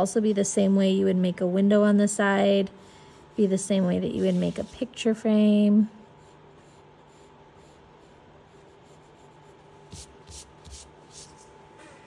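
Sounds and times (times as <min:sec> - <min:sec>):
pencil scratching on paper: 0:03.3 - 0:04.9, 0:06.0 - 0:11.5.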